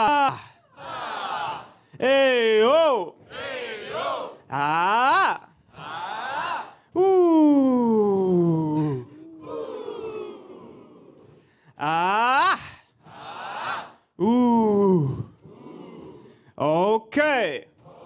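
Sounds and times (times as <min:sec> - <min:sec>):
crowd echoing calls: 0:00.0 - 0:16.5, 0:17.7 - 0:18.0.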